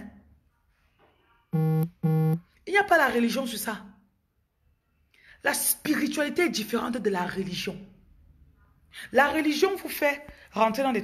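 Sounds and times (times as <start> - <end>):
low electronic buzz tones: 1.6 - 2.4
woman's voice: 2.7 - 4.0, 5.4 - 7.9, 8.9 - 11.0.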